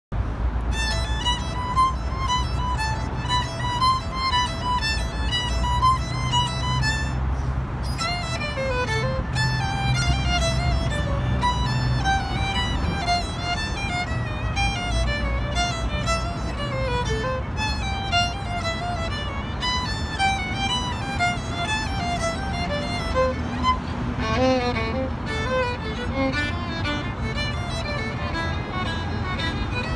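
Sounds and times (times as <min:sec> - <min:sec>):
solo violin melody: 0:00.3 - 0:29.9.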